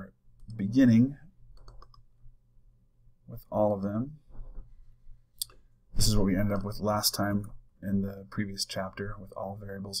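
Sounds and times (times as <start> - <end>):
low steady hum: 0.0 - 10.0
faint computer mouse clicks: 1.6 - 2.1.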